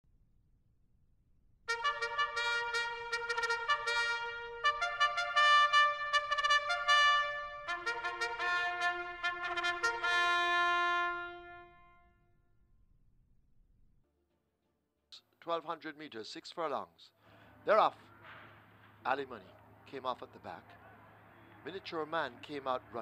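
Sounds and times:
trumpet fanfare: 1.7 - 12.1.

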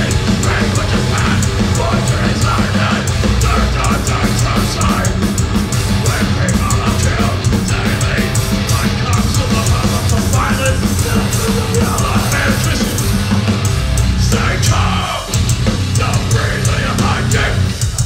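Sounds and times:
distorted guitars and bass: 0.0 - 18.0
fast pounding drums: 0.0 - 18.0.

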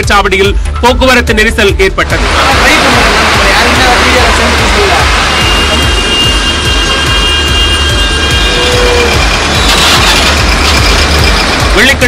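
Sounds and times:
background music: 0.0 - 12.0
slow-moving road traffic: 2.0 - 12.0.

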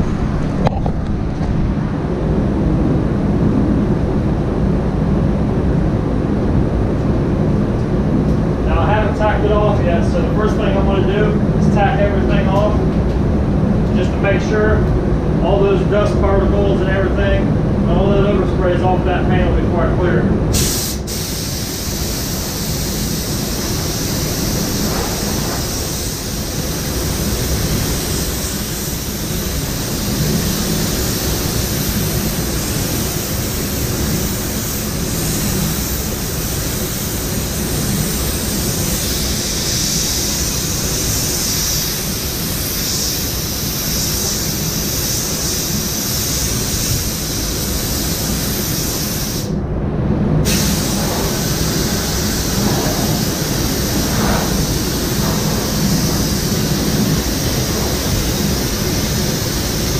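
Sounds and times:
paint booth air noise: 0.0 - 59.9
paint spray gun hissing: 20.5 - 49.6, 50.4 - 59.9.

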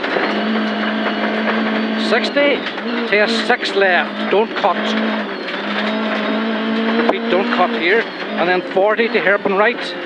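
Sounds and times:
car engine at constant revs: 0.0 - 10.0
gravel and road noise: 0.0 - 10.0.

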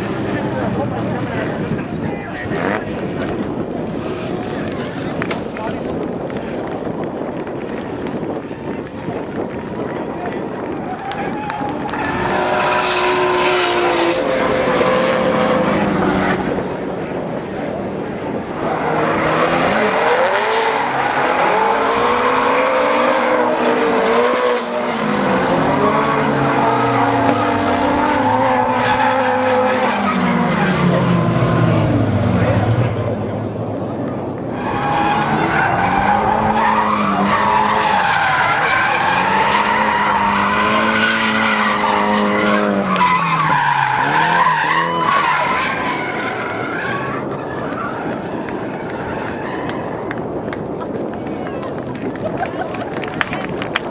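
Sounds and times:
tires squealing: 0.0 - 17.2, 18.3 - 33.3, 34.2 - 52.4
car engines revving: 0.0 - 53.9.

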